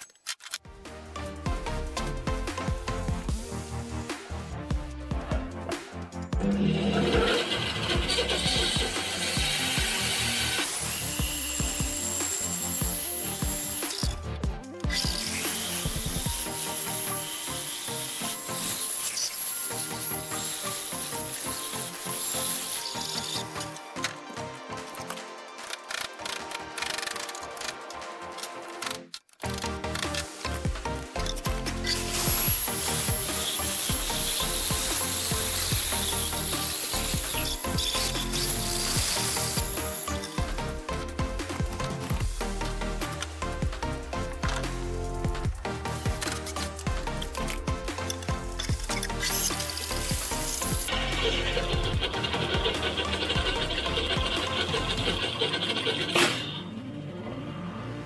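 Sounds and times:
background music: 0:00.4 - 0:58.0
bandsaw cutting log: 0:06.4 - 0:24.1, 0:24.9 - 0:28.8, 0:29.4 - 0:45.0, 0:45.7 - 0:56.6.

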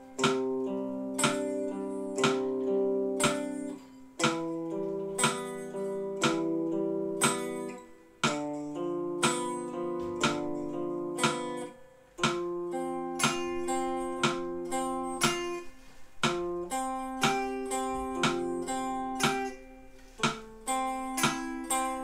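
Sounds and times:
guitar picking chords: 0:00.0 - 0:22.0
metronome clicking: 0:00.0 - 0:22.0.

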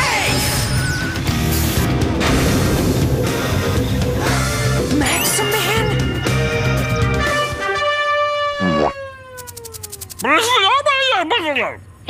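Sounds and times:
rapid sharp clicks: 0:09.4 - 0:10.3.

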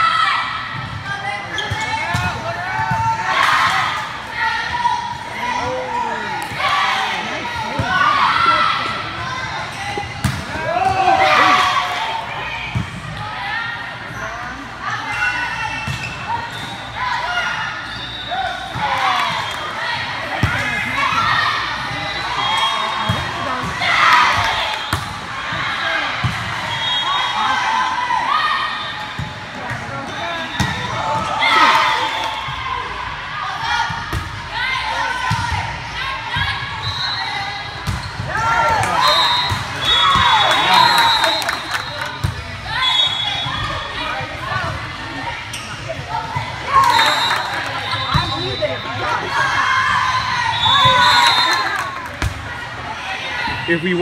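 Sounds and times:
people calling and shouting: 0:00.0 - 0:54.0.

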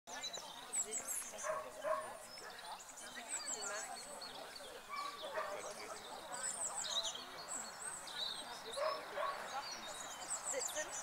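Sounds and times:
dog barking: 0:01.4 - 0:02.6, 0:04.9 - 0:05.7, 0:08.8 - 0:09.5.

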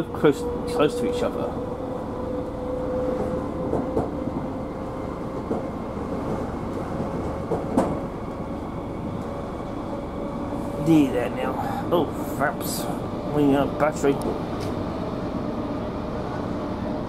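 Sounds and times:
train wheels rumbling: 0:00.0 - 0:17.0.

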